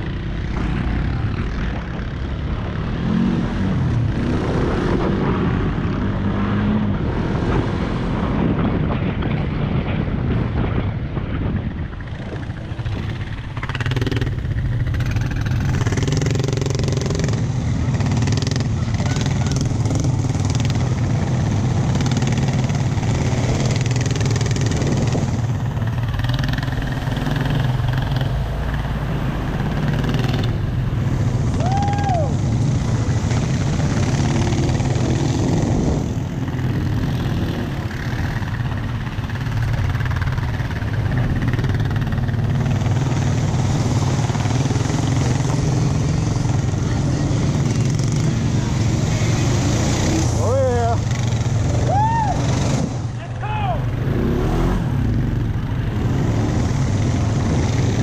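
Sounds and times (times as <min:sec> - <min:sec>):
quad bike engine running: 0:00.0 - 0:58.0.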